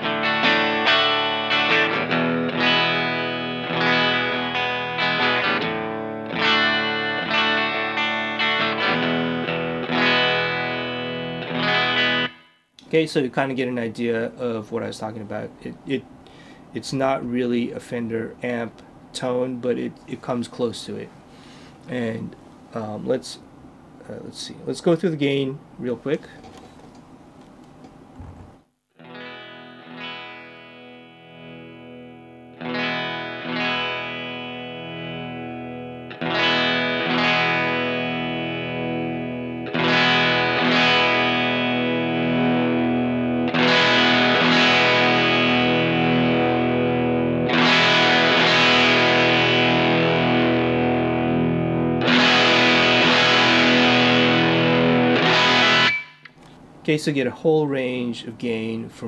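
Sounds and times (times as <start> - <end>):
electric guitar chords: 0.0 - 12.6, 29.0 - 56.4.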